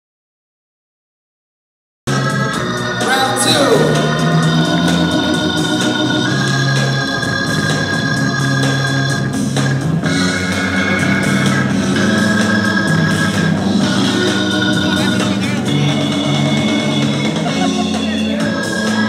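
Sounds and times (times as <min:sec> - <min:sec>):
held organ chords: 0:03.0 - 0:06.3.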